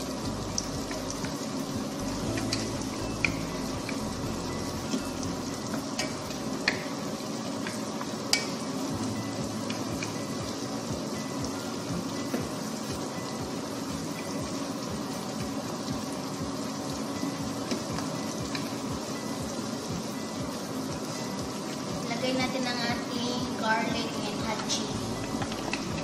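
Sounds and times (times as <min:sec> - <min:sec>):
onions sizzling in butter: 0:00.0 - 0:26.0.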